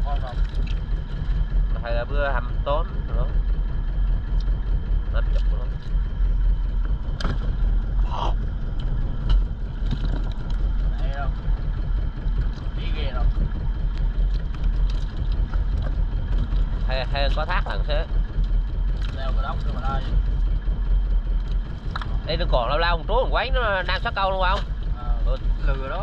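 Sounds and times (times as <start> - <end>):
people talking: 0.0 - 0.4, 1.7 - 3.4, 5.1 - 5.8, 8.0 - 8.4, 10.9 - 11.4, 12.8 - 13.3, 16.9 - 18.1, 19.1 - 20.1, 22.2 - 26.0
boat engine rumbling: 0.0 - 26.0.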